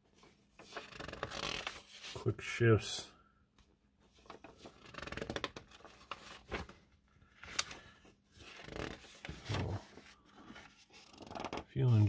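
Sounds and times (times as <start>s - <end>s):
magazine pages turning: 0.2s - 2.3s, 4.1s - 12.0s.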